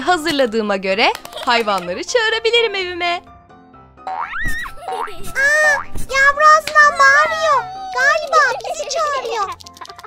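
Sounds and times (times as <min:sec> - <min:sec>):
child exclaiming: 0:05.3 - 0:09.6.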